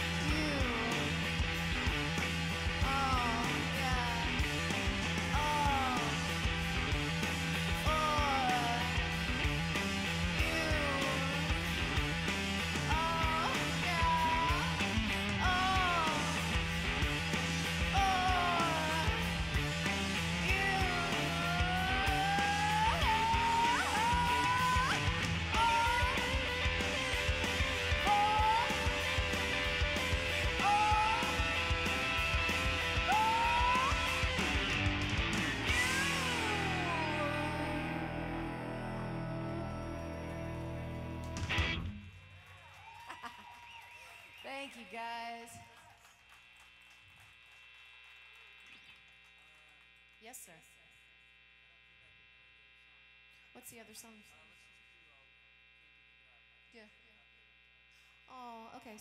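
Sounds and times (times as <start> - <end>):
rock band playing: 0.0 - 42.0
woman singing: 0.2 - 1.1, 2.8 - 4.5, 7.8 - 9.0, 10.4 - 11.4, 12.9 - 14.8, 15.4 - 16.4, 18.0 - 19.2, 20.4 - 26.7, 28.0 - 29.0, 35.9 - 41.4.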